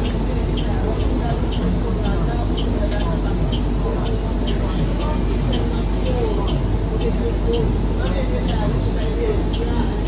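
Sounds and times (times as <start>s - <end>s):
bus engine low rumble: 0.0s - 10.0s.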